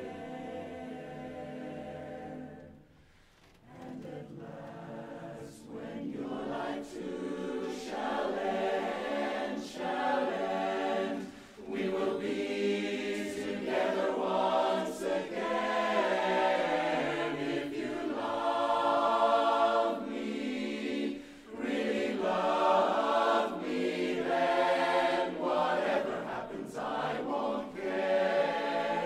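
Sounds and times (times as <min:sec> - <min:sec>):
mixed chorus singing a cappella: 0:00.0 - 0:03.0, 0:03.6 - 0:29.0.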